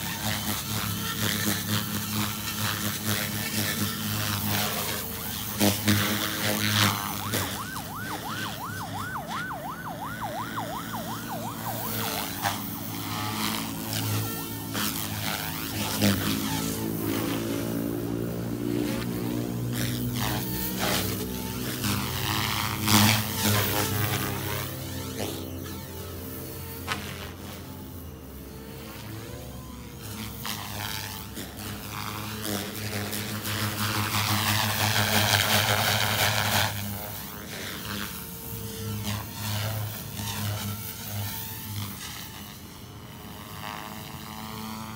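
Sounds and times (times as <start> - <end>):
electric motor whining: 0.0 - 44.9
rc helicopter humming overhead: 0.0 - 44.9
electronic siren yelping: 6.7 - 15.2.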